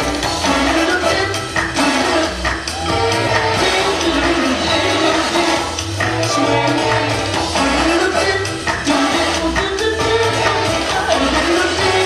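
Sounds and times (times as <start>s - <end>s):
dance music with bass line: 0.0s - 12.0s.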